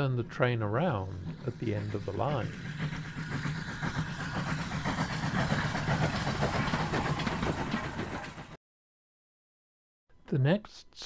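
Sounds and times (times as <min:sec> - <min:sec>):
steam train running: 0:00.0 - 0:08.6.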